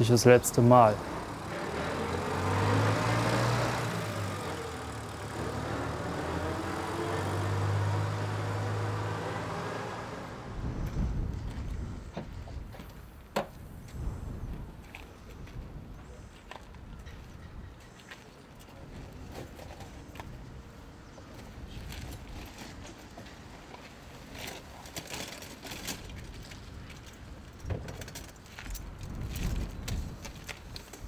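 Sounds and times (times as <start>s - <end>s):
street sounds: 0.0s - 31.0s
tractor engine driving past: 0.6s - 11.2s.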